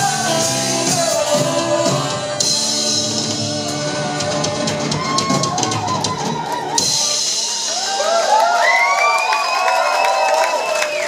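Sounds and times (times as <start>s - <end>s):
crowd cheering and whooping: 3.4s - 11.0s
long high whistle: 8.6s - 11.0s.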